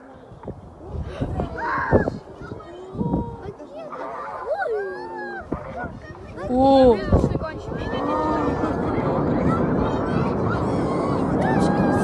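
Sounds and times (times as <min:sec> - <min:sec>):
people crying out excitedly: 0:07.7 - 0:12.0.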